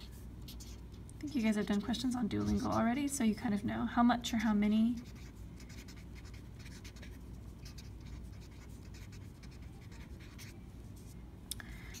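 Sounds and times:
marker scratching on paper: 0.0 - 3.0, 5.0 - 11.2.

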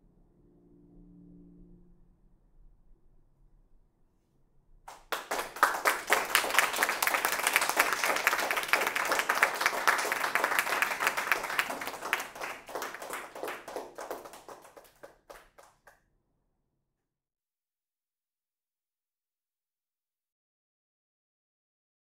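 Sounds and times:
audience applauding: 4.9 - 15.9.

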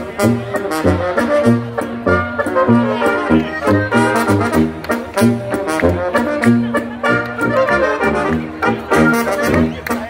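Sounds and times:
brass band oom-pah music: 0.0 - 10.0.

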